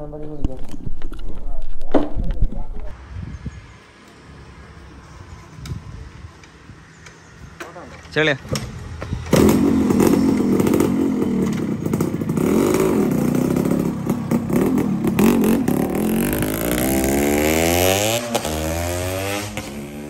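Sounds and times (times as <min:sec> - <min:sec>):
motorcycle engine revving: 0:08.4 - 0:20.0.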